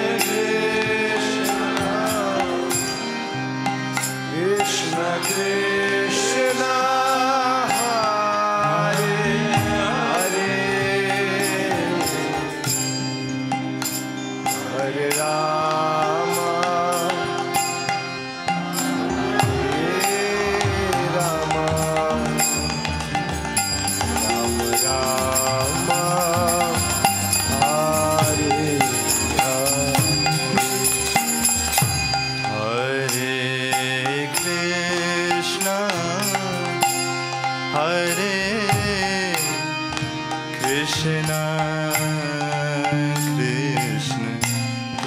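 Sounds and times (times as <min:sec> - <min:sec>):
man singing a devotional chant: 0:00.0 - 0:03.1, 0:04.3 - 0:12.9, 0:14.5 - 0:18.0, 0:19.2 - 0:23.0, 0:24.0 - 0:45.0
harmonium drone: 0:00.0 - 0:45.0
drum strikes: 0:18.6 - 0:32.6.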